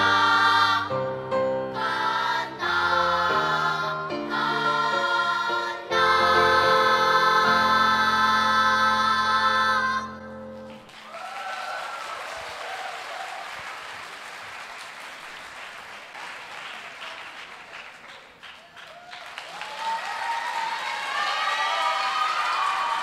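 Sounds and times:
audience applauding: 10.6s - 23.0s.

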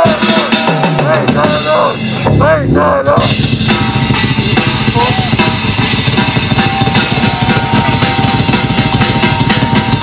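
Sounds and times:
distorted electric guitars: 0.0s - 10.0s
fast kick drum strokes: 0.0s - 10.0s
heavy metal band playing live: 0.0s - 10.0s.

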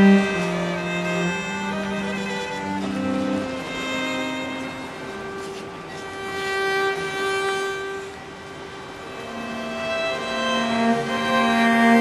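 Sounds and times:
bowed string long tone: 0.0s - 12.0s.

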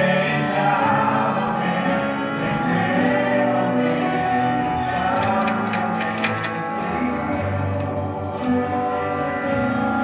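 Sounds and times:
guitar strumming: 0.0s - 10.0s
worship band playing: 0.0s - 10.0s.

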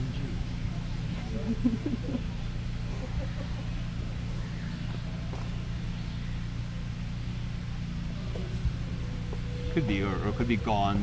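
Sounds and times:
faint murmuring: 0.0s - 5.8s, 6.8s - 11.0s
steady low hum: 0.0s - 11.0s.

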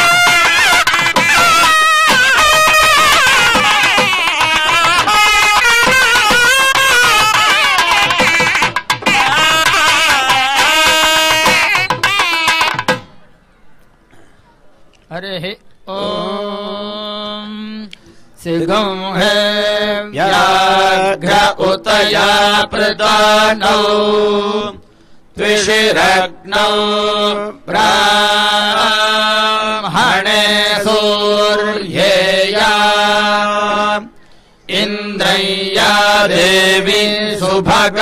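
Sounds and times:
person chanting mantras: 15.9s - 24.8s.

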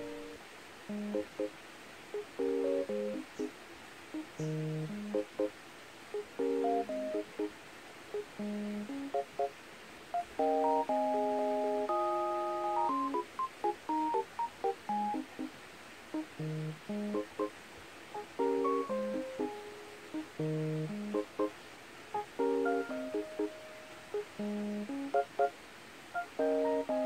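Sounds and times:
light instrumental tune: 2.4s - 3.5s, 4.2s - 5.5s, 6.2s - 7.5s, 10.2s - 15.6s, 16.2s - 17.5s, 18.2s - 21.5s, 22.2s - 25.5s, 26.2s - 27.0s.

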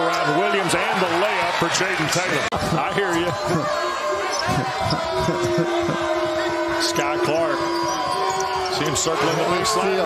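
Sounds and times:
arena crowd din: 0.0s - 10.0s.

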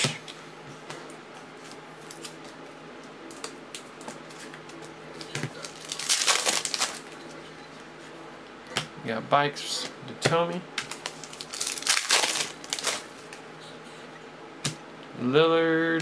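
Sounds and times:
foil wrappers crinkling: 5.2s - 7.3s, 10.9s - 13.4s.

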